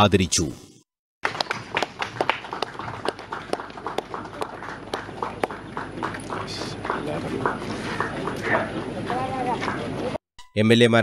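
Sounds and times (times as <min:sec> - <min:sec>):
small crowd applauding: 0:01.2 - 0:10.2
crowd noise: 0:02.8 - 0:10.2.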